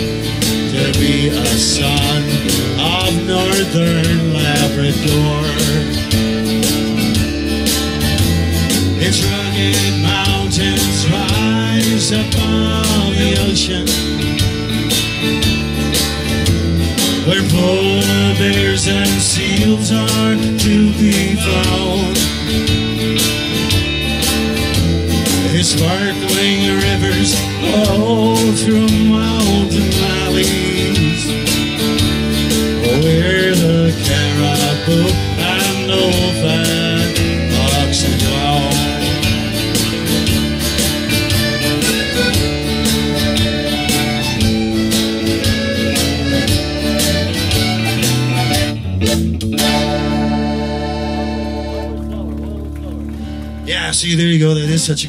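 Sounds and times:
button accordion: 0:00.0 - 0:53.6
electric bass: 0:00.0 - 0:55.0
strummed acoustic guitar: 0:00.0 - 0:55.0.

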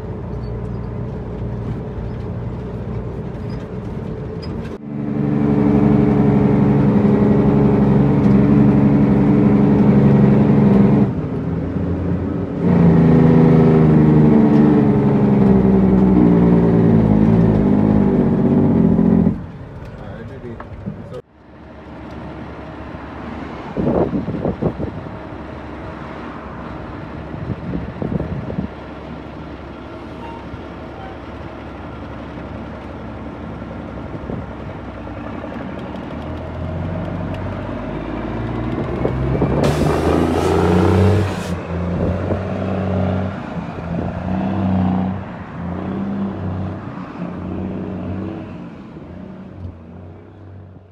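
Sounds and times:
diesel truck engine running: 0:00.0 - 0:50.9.

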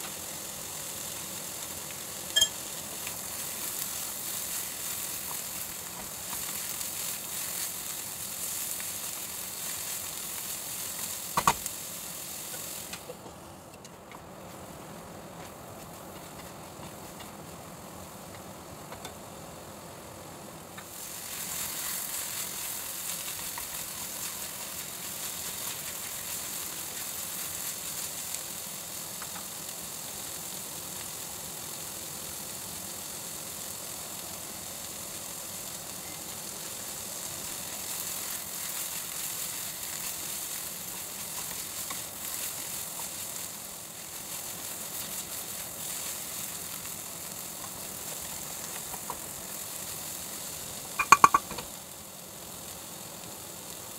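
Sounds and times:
vegetables sizzling in a pan: 0:00.0 - 0:53.9.

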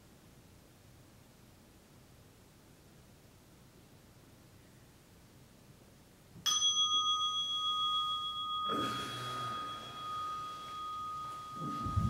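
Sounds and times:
meditation bell ringing: 0:06.5 - 0:12.0.

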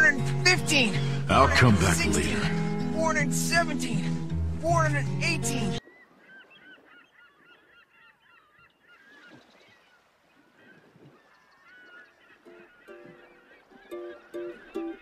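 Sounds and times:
plucked background music: 0:00.0 - 0:05.8
small birds chirping: 0:05.8 - 0:15.0.

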